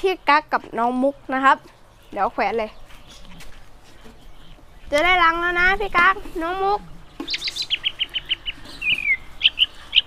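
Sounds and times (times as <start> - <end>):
cockatiels chirping: 7.2 - 10.0.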